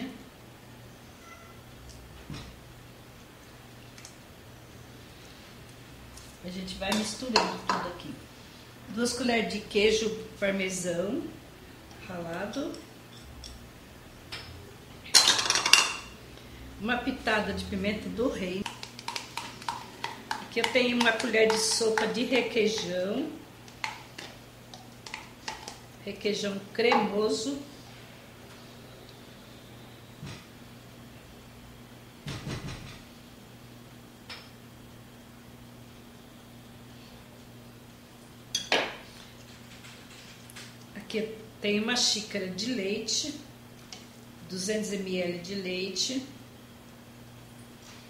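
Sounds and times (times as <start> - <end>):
kitchen utensils rattling and scraping: 15.1 - 16.1.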